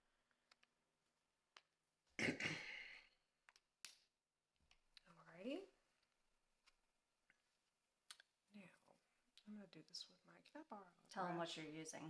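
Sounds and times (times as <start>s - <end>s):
woman speaking: 5.0s - 5.8s, 8.5s - 12.0s.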